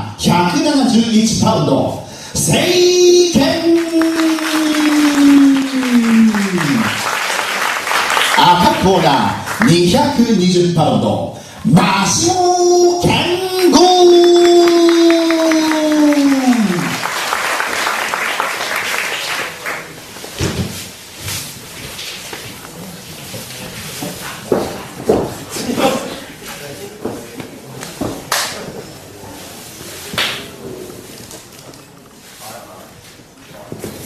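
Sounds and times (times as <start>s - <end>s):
small crowd applauding: 3.2s - 10.2s, 13.2s - 20.2s.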